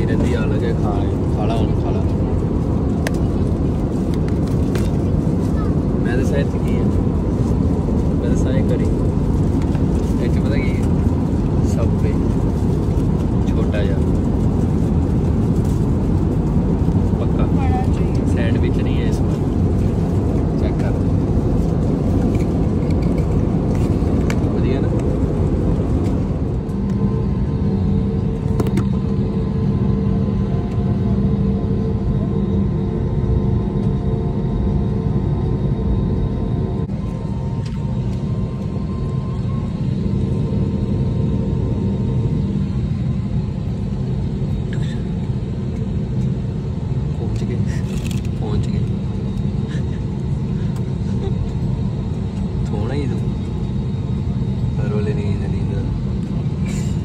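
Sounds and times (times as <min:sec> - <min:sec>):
people talking: 0:00.0 - 0:02.3, 0:47.2 - 0:48.9, 0:52.7 - 0:53.3, 0:54.8 - 0:55.9
airliner cabin rumble: 0:00.0 - 0:57.0
steady multi-pitched hum: 0:00.0 - 0:57.0.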